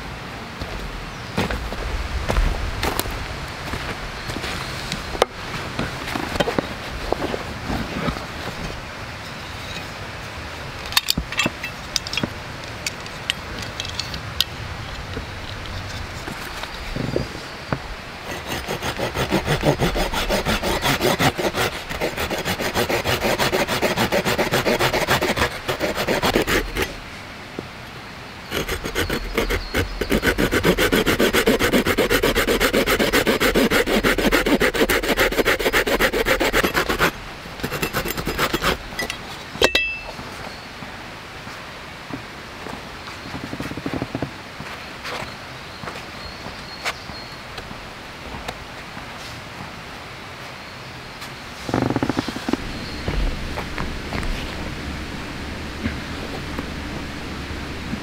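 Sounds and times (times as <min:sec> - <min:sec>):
hand saw cutting wood: 0:18.2 - 0:27.0, 0:28.5 - 0:38.9.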